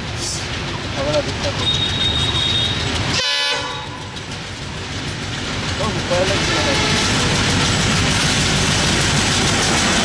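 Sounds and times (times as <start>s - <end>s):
train engine and wheels on rails: 0.0s - 10.0s
high pitched train horn blast: 1.7s - 4.1s.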